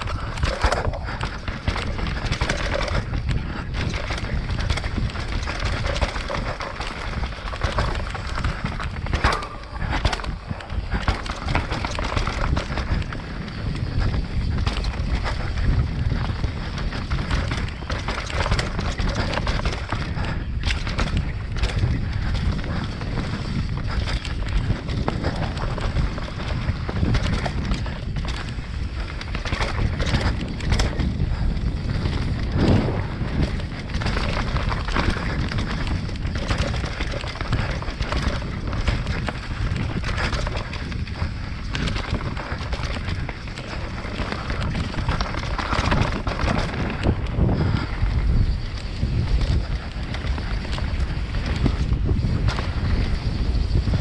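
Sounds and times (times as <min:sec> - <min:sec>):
bike knocks and rattles: 0:00.0 - 0:54.0
tyres rumbling on dirt: 0:00.0 - 0:54.0
wind on microphone: 0:00.0 - 0:54.0.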